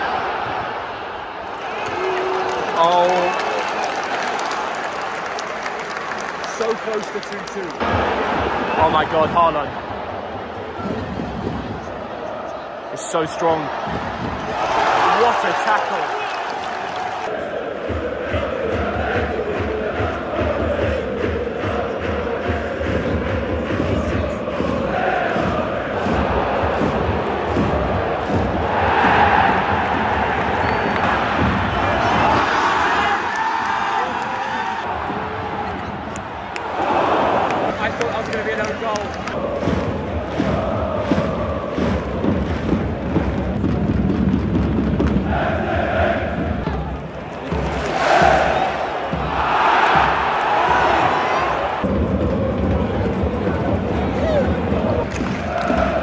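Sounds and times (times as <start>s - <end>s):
stadium crowd singing and chanting: 0.0s - 56.0s.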